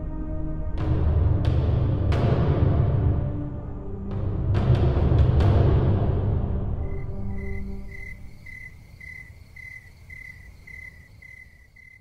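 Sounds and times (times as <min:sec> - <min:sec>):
cricket chirping: 0:06.8 - 0:12.0.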